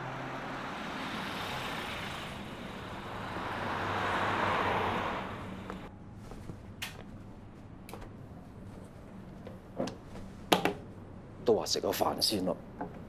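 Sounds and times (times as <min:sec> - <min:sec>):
road traffic noise: 0:00.0 - 0:06.1.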